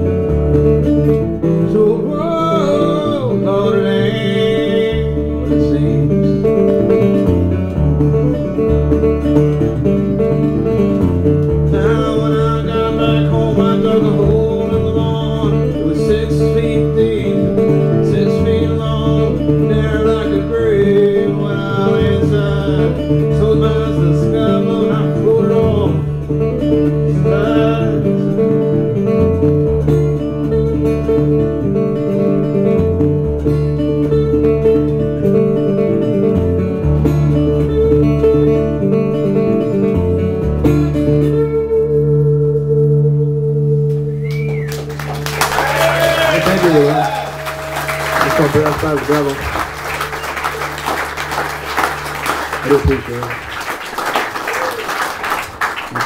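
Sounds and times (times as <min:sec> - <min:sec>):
fingerpicked acoustic guitar: 0:00.0 - 0:45.2, 0:48.4 - 0:53.4.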